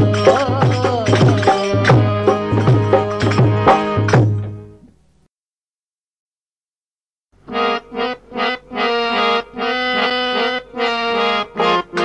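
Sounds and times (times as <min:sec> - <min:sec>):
harmonium playing reedy chords: 0:00.0 - 0:04.8, 0:07.4 - 0:12.0.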